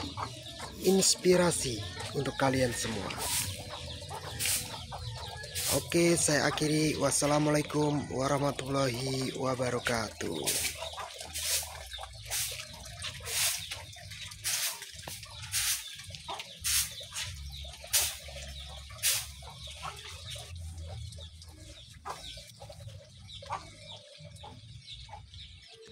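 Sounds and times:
chickens clucking: 0.0 - 25.9.

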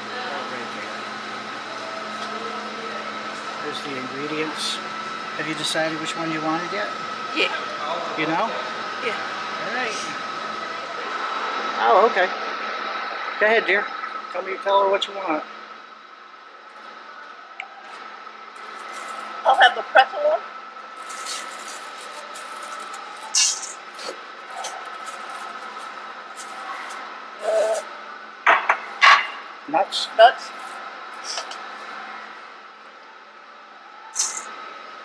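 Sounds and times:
steady high hum: 0.0 - 35.0.

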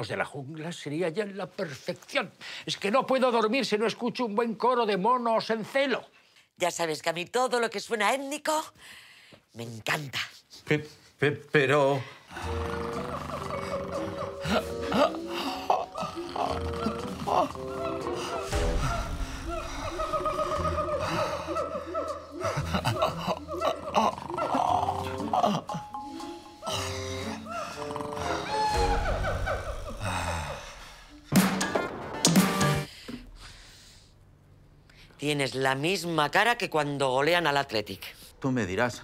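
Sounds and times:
man snoring: 12.3 - 18.5, 26.6 - 28.6
monkeys calling and chattering: 12.4 - 29.5
music: 12.4 - 30.1, 31.2 - 32.9.

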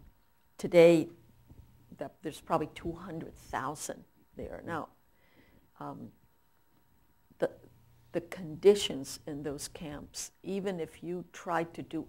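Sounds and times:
woman speaking: 0.6 - 1.2, 1.9 - 5.0, 5.8 - 6.2, 7.4 - 12.0.

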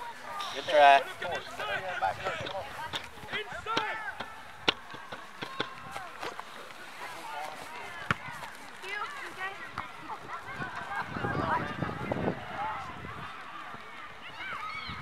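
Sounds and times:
voices calling across field: 0.0 - 15.0
sharp knocks: 2.2 - 5.8.

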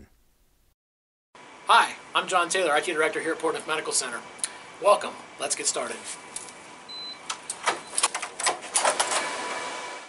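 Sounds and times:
keypad beep: 6.9 - 8.1.

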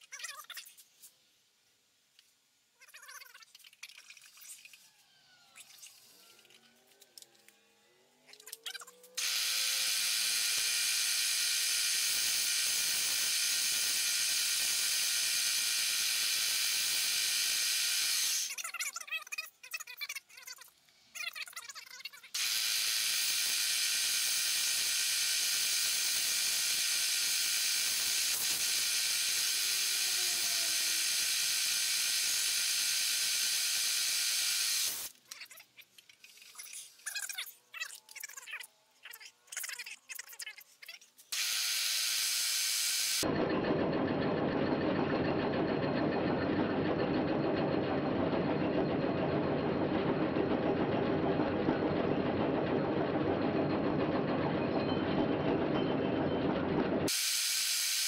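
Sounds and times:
saw high-pitched ringing whine: 8.9 - 18.5, 22.4 - 35.1.

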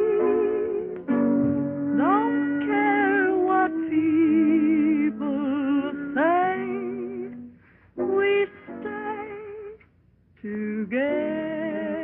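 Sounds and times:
woman singing slow song: 0.0 - 1.0, 1.9 - 12.0.

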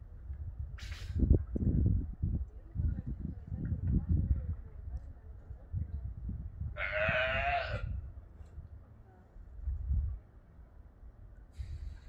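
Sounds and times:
wind rumble on microphone: 0.0 - 12.0
sea lion bleating call: 6.8 - 7.9.

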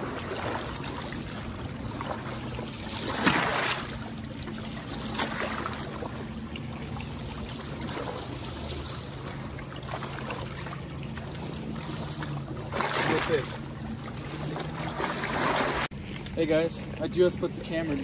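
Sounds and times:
water lapping against rocks: 0.0 - 18.0.

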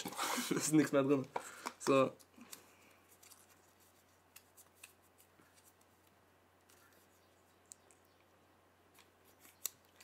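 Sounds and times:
paper slip rustling: 0.0 - 7.2
low electrical hum: 0.4 - 10.0.

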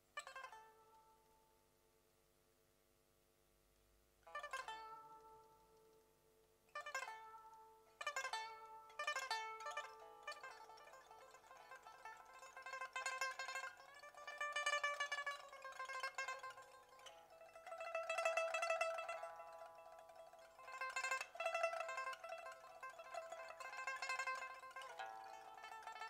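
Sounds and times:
pipa plucked strings: 4.3 - 6.0, 6.7 - 26.0.

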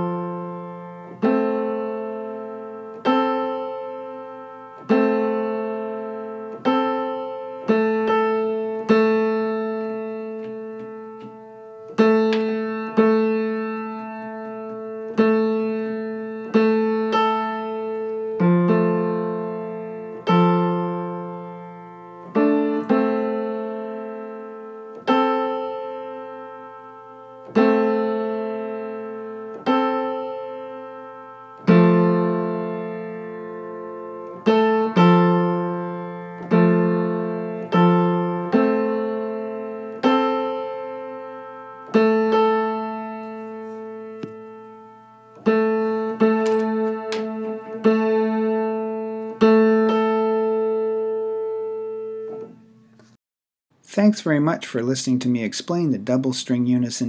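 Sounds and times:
piano notes ringing: 0.0 - 53.2.

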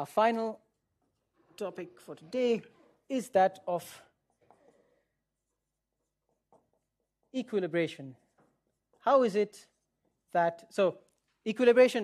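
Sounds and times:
marker strokes on whiteboard: 0.3 - 2.1, 2.8 - 11.4.

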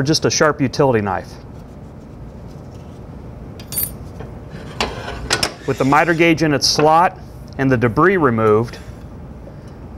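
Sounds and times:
knife blade scraping board: 4.5 - 6.3.

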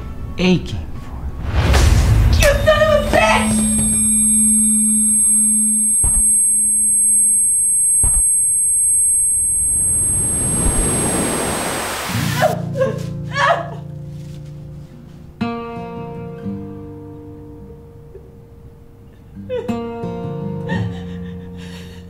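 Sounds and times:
low hum: 1.0 - 12.6
rushing noise: 1.1 - 6.4, 9.4 - 12.4
high-pitched ringing tone: 2.3 - 12.6.

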